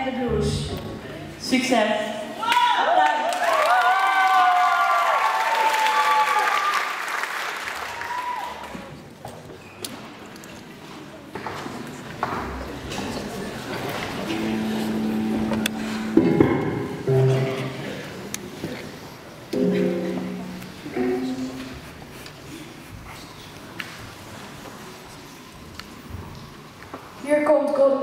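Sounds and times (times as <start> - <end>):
audience applause and cheering: 2.4 - 9.0
rock band sounding notes: 14.2 - 18.3, 19.5 - 21.8.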